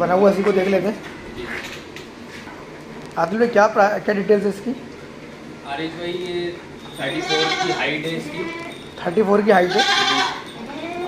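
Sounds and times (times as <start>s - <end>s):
goat bleating: 7.0s - 8.9s, 9.5s - 11.0s.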